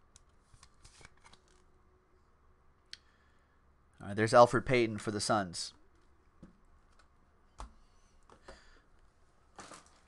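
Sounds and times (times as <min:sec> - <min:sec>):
trading cards handled: 0:00.4 - 0:01.7.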